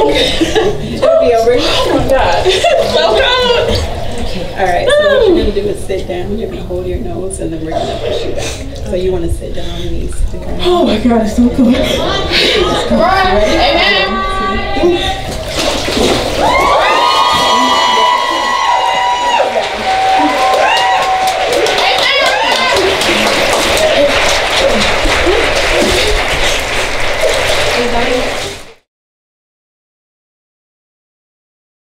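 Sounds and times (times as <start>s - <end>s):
water sloshing in a pool: 0.0s - 28.8s
clapping and cheering: 16.2s - 28.9s
women whooping: 16.4s - 26.1s.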